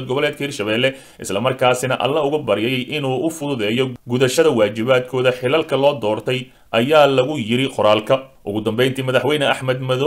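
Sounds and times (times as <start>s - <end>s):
man narrating: 0.0s - 10.0s.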